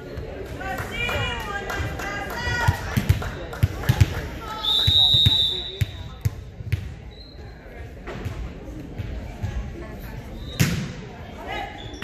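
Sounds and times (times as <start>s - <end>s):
volleyball bouncing on gym floor: 1.8s - 7.1s
referee whistle: 4.6s - 6.1s.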